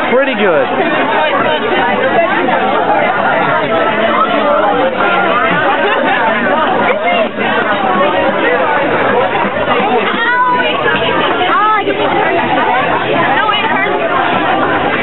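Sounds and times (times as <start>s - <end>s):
chatter of many people: 0.0s - 15.0s.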